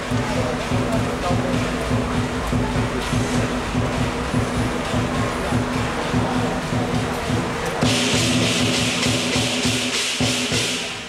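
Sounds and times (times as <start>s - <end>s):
clashing cymbals: 0.0s - 11.0s
gong: 0.0s - 11.0s
large drum beating fast: 0.0s - 11.0s.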